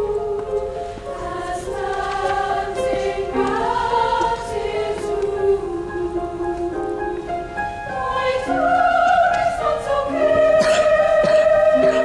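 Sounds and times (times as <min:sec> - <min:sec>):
large mixed choir singing: 0:00.0 - 0:12.0.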